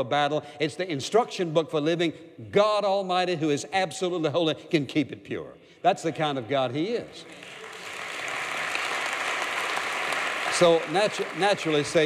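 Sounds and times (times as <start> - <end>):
audience applause: 7.2 - 12.0.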